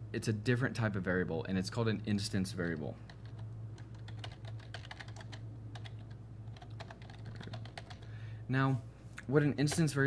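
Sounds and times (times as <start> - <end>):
low electrical hum: 0.0 - 10.0
computer keyboard typing: 3.1 - 8.1.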